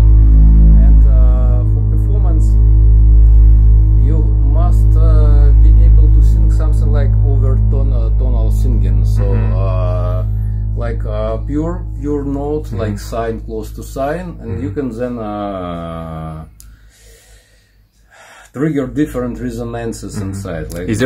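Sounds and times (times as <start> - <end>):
low synthesizer drone: 0.0 - 17.9
wordless vocal synth tones: 4.0 - 16.5.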